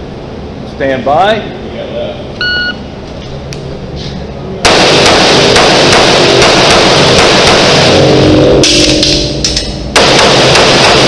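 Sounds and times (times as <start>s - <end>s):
pistol shots indoors: 4.6s - 11.0s.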